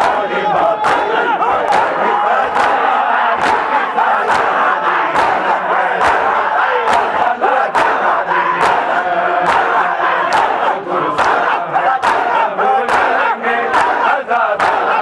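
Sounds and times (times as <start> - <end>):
crowd of men chanting: 0.0 - 15.0.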